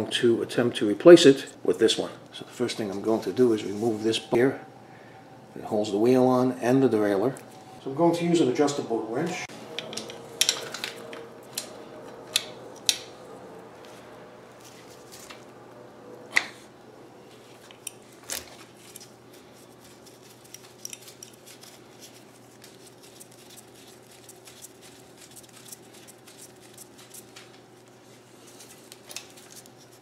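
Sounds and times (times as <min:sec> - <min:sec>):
low hum: 0:01.6 - 0:17.8
metallic clicks of small parts: 0:09.8 - 0:13.1.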